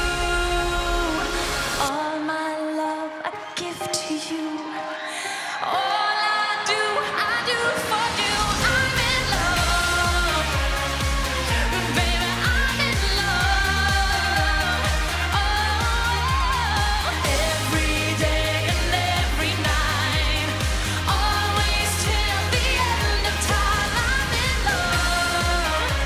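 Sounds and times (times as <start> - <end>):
dance-pop backing track: 0.0 - 26.0
woman singing: 0.0 - 26.0.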